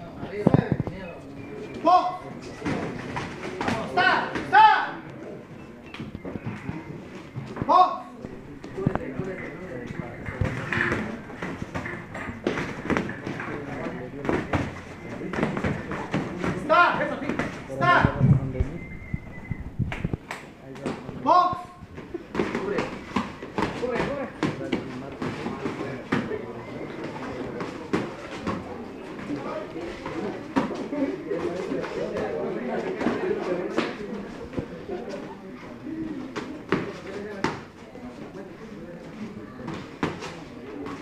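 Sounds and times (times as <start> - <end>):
voices calling out: 0.5 - 20.2.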